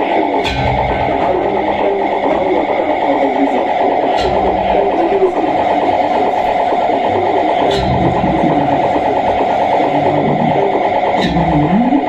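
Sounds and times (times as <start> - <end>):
electronic noise drone: 0.0 - 12.0
wavering sliding tones: 0.0 - 12.0.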